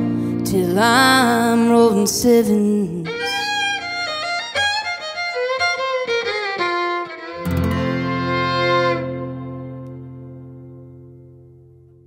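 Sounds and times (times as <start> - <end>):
acoustic guitar: 0.0 - 12.0
fiddle playing quick notes: 3.0 - 10.4.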